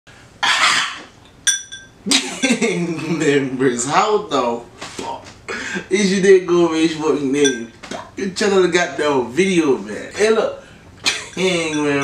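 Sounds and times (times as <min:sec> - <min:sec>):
metallic ding: 0:01.4 - 0:02.0.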